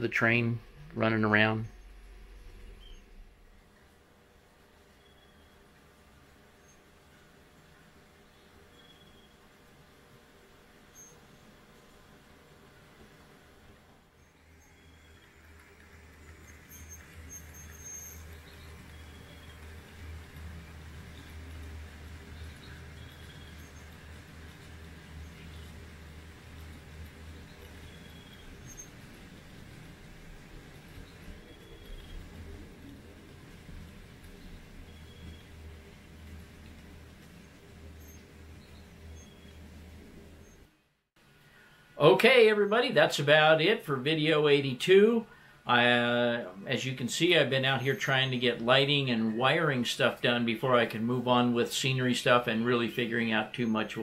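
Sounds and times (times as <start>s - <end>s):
small wheels rumbling on rails: 0.0s - 40.8s
model train motor hum: 14.4s - 40.6s.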